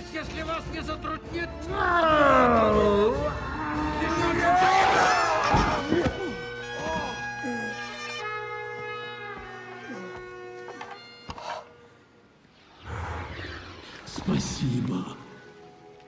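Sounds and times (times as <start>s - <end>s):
bagpipes droning: 3.3s - 12.4s.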